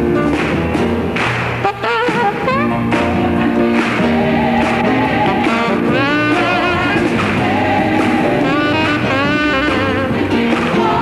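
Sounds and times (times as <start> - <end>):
saxophone with vibrato: 1.6 - 3.1, 4.6 - 11.0
gospel choir singing: 3.2 - 11.0.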